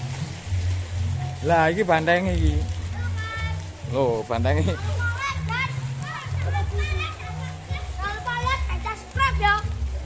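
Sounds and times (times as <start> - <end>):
background music bass line: 0.0 - 10.0.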